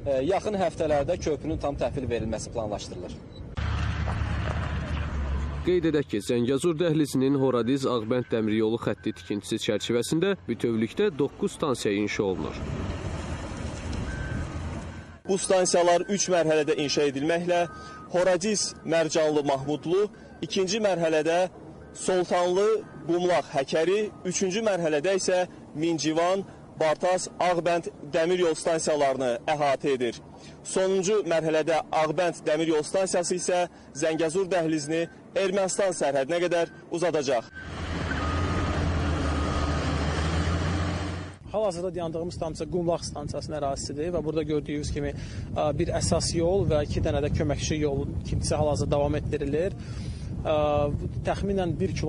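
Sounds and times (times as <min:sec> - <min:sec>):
diesel engine rumbling: 0:01.9 - 0:41.6.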